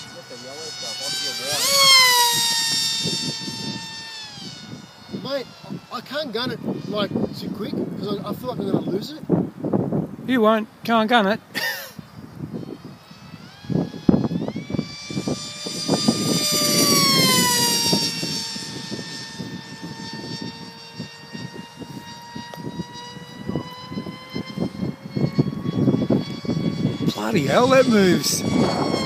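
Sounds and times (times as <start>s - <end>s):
wind buffeting microphone: 0.0s - 10.9s, 12.0s - 29.0s
model jet motor whining overhead: 0.0s - 29.0s.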